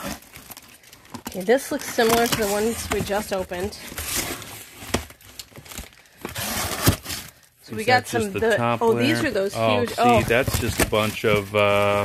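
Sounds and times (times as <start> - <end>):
cardboard packaging rustling: 0.0 - 12.0.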